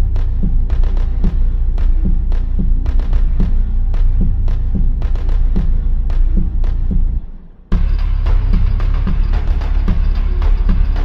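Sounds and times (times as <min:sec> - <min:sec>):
breakcore electronic music: 0:00.0 - 0:11.0
low kick-drum hits: 0:00.0 - 0:11.0
sub-bass drone: 0:00.0 - 0:11.0
sharp snare-like hits: 0:00.2 - 0:07.1.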